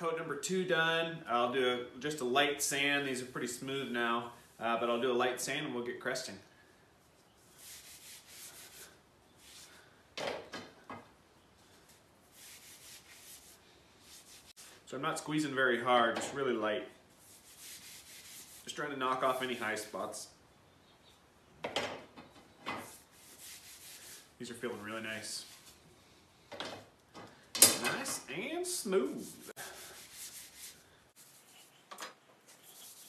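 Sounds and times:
sandpaper rubbing on wood: 7.5s - 9.7s, 12.3s - 14.6s, 17.2s - 19.8s, 22.8s - 25.8s, 28.8s - 31.8s, 32.5s - 33.0s.

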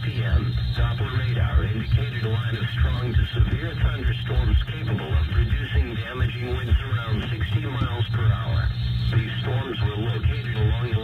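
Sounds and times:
steady low hum: 0.0s - 11.0s
voice over car radio: 0.0s - 11.0s.

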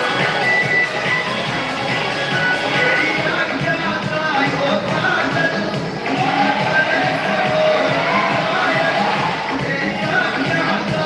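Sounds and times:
dance music over loudspeakers: 0.0s - 11.0s.

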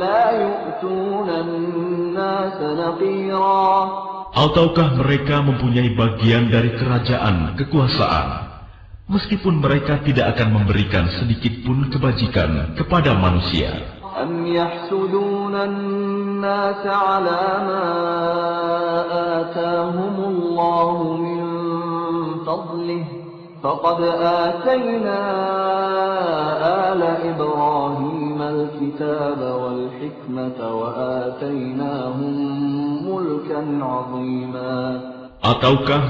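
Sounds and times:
man chanting melodically: 0.0s - 36.0s.

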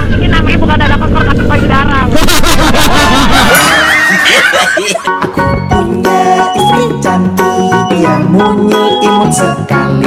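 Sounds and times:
motorcycle engine running: 0.0s - 3.6s
men laughing: 2.1s - 5.4s.

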